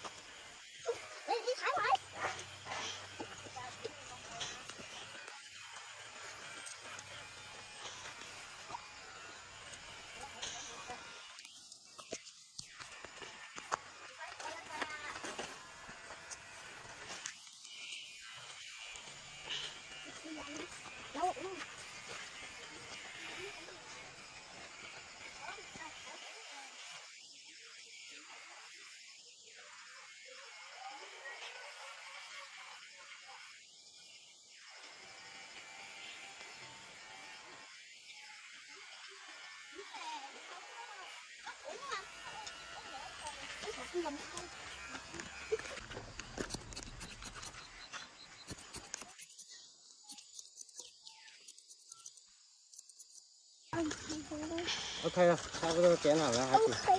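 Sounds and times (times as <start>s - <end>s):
faint indistinct voices: 0.8s - 17.2s.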